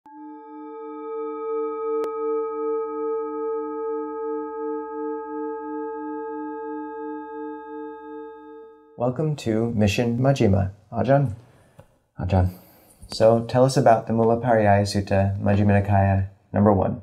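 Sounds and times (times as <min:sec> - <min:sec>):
singing bowl ringing: 0:00.1 - 0:09.0.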